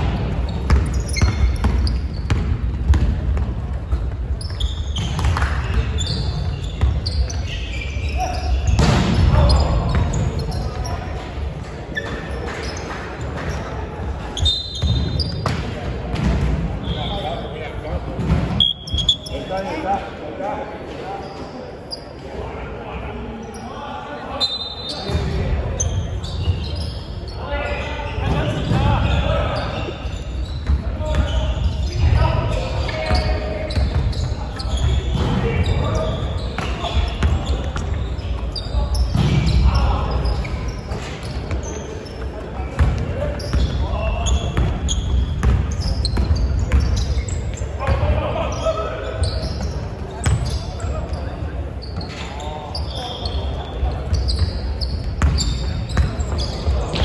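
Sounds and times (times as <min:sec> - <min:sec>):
sneakers squeaking on floor: 0:00.0 - 0:20.1, 0:21.0 - 0:22.2, 0:23.4 - 0:57.0
basketball bouncing on hardwood: 0:00.7 - 0:03.2.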